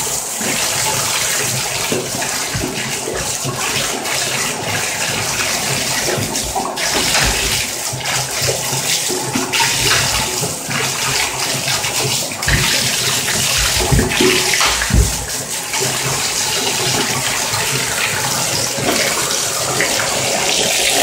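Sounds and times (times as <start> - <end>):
faucet running into tub: 0.0 - 21.0
water splashing: 0.0 - 21.0
low thumps: 13.4 - 15.4.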